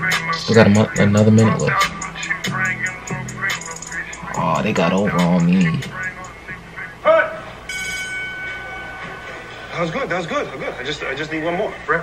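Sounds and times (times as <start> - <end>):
vocal exclamation: 4.1 - 6.2, 6.8 - 7.6
high electronic ring tone: 7.7 - 9.8.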